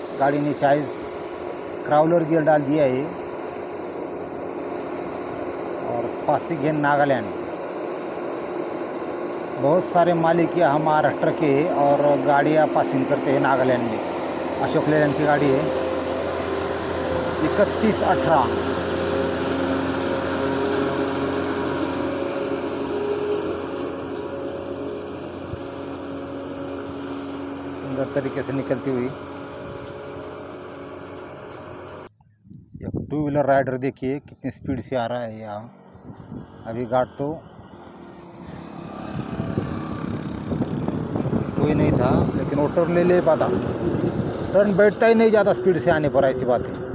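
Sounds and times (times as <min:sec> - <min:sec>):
diesel truck engine passing: 0:00.0 - 0:32.1, 0:35.2 - 0:46.9.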